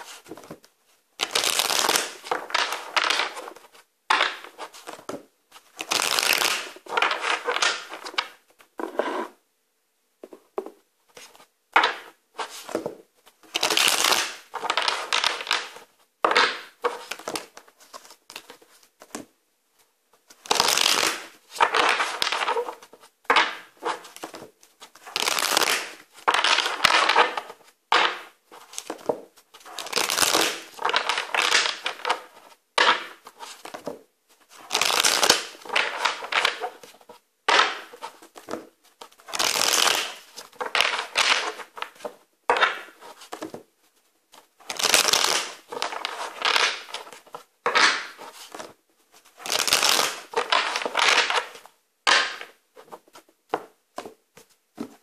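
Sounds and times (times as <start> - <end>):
cards being shuffled: 0.0 - 9.3, 10.6 - 19.3, 20.3 - 43.6, 44.4 - 55.0.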